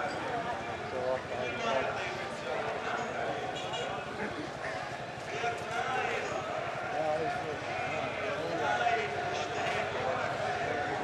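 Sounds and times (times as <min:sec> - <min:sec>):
indistinct talking: 0:00.0 - 0:11.0
outdoor street noise: 0:00.0 - 0:11.0.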